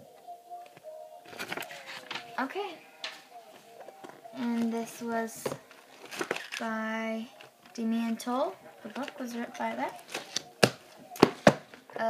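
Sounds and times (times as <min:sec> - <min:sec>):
books knocking: 0:10.1 - 0:11.8.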